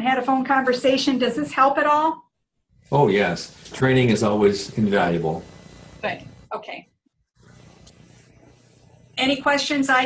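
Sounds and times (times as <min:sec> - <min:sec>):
microphone hiss: 0:02.7 - 0:06.6.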